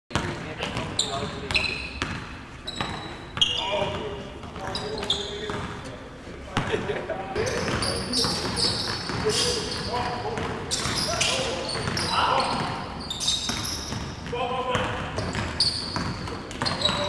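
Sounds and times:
sneakers squeaking: 0.1 - 17.0
basketball bouncing on wooden floor: 13.4 - 17.0.

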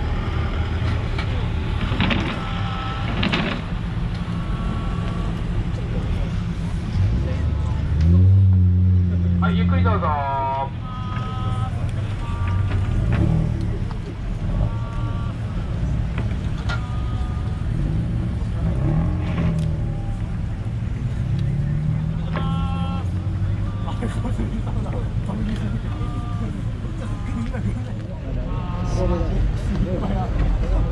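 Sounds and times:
car engines and exhausts droning: 0.0 - 30.9
low traffic rumble: 0.0 - 30.9
people's voices and calls: 0.0 - 30.9.

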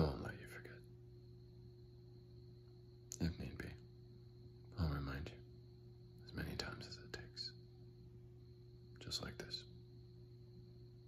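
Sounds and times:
man whispering: 0.0 - 0.9, 3.1 - 3.9, 4.7 - 5.5, 6.2 - 7.7, 8.9 - 9.8
faint hum: 0.0 - 11.0.

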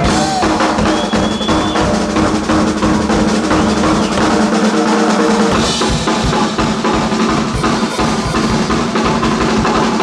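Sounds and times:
cymbals: 0.0 - 10.0.

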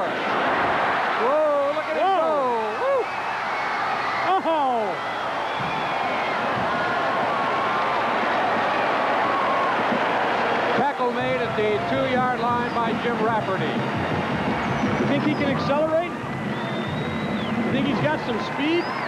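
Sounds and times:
stadium crowd cheering: 0.0 - 19.0
man's voice: 10.8 - 13.8, 15.0 - 16.1, 17.7 - 18.9.

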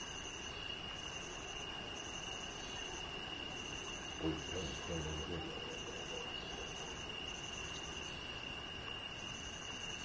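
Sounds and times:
faint hiss: 0.0 - 10.0
higher insect trill: 0.0 - 10.0
insect trilling: 3.6 - 8.6.

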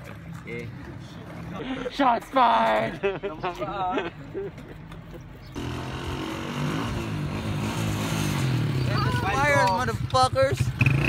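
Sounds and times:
small motorcycle engine running: 5.6 - 11.0.

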